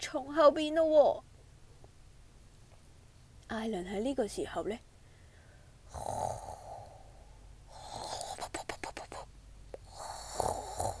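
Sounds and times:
person imitating snoring: 5.9 - 8.8, 9.8 - 11.0.

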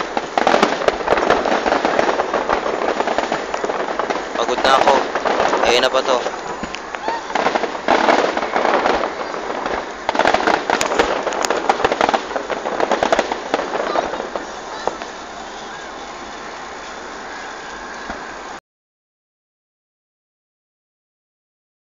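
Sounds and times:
fireworks crackling: 0.0 - 18.6.

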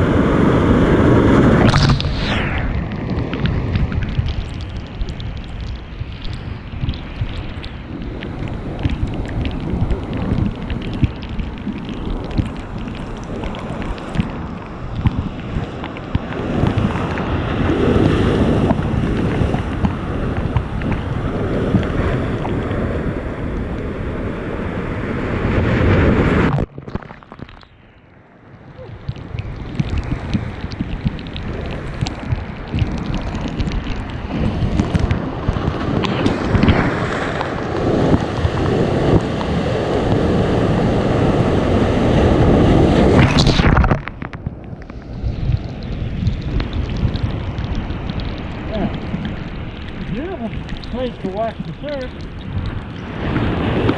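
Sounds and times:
wind buffeting microphone: 0.0 - 26.7, 28.5 - 53.9
surf breaking over rocks: 0.0 - 28.0, 28.8 - 53.9.

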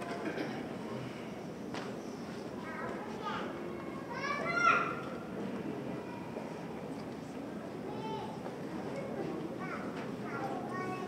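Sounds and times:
audience chatter in a hall: 0.0 - 11.0.

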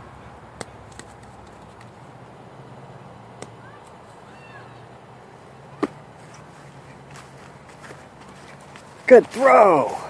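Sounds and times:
low outdoor hum: 0.0 - 10.0.

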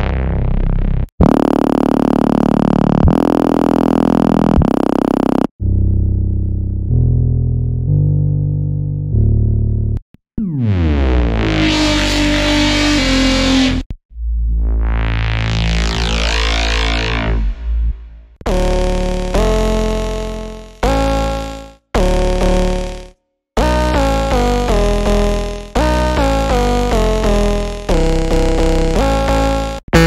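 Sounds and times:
buzzy synth bass note: 0.0 - 30.0
dull synth bass note: 0.0 - 30.0
deep sub tone: 5.6 - 18.4.

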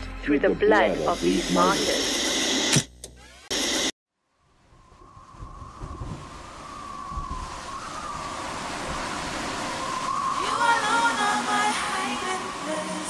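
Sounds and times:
rising rushing noise: 4.4 - 13.0.

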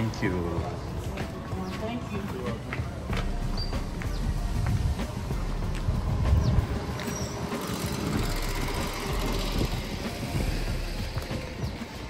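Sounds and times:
street traffic: 0.0 - 12.0.

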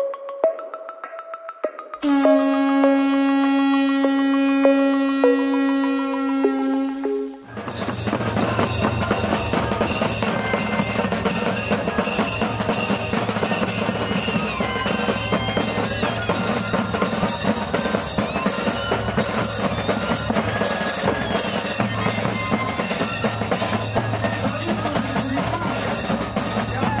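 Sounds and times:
flute melody: 2.0 - 27.0
bass and snare drums beating: 7.4 - 27.0.

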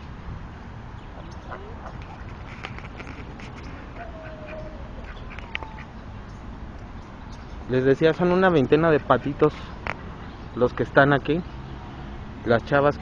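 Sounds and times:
ducks calling: 1.1 - 2.6, 3.3 - 6.1, 8.2 - 10.5.

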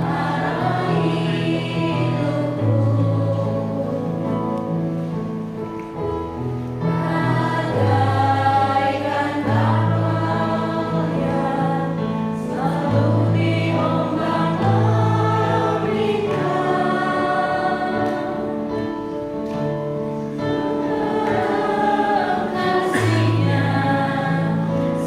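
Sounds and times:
group singing a hymn: 0.0 - 5.1, 6.8 - 25.0.

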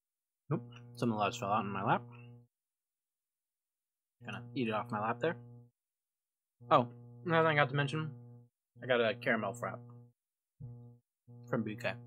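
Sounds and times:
faint hum: 0.5 - 2.5, 4.2 - 5.8, 6.6 - 12.0.

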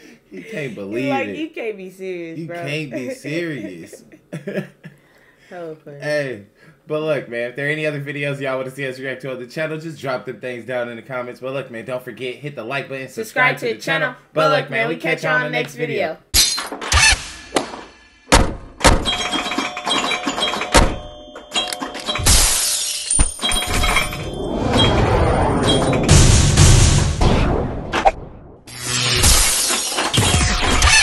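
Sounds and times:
glass shattering: 16.3 - 17.5, 21.6 - 26.0.

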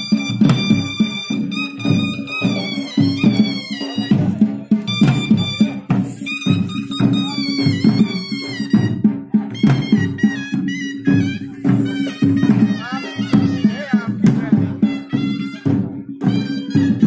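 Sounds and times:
drum beats: 0.0 - 17.0
reedy wind instrument melody: 0.0 - 17.0.

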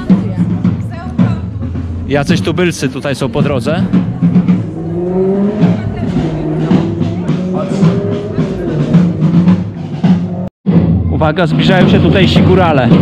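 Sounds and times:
drumbeats: 0.0 - 13.0.

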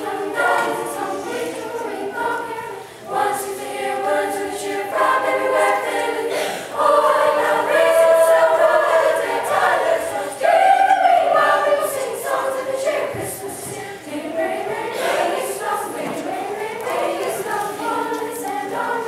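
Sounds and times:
children's choir singing: 0.0 - 19.0.

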